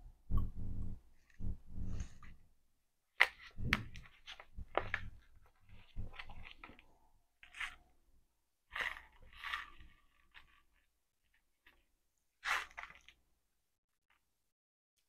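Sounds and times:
candy crunching and chewing: 5.6s - 8.0s, 8.7s - 13.2s
candy wrapper crinkling: 8.7s - 13.3s.

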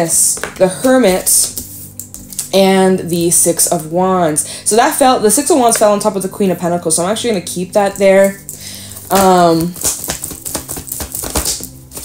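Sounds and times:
soft background music: 0.0s - 12.0s
cards being shuffled: 0.4s - 2.5s, 8.2s - 12.0s.

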